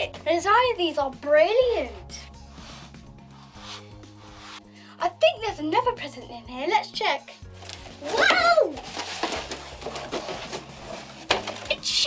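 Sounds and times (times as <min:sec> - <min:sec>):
hands rummaging in cardboard box: 0:07.6 - 0:11.9.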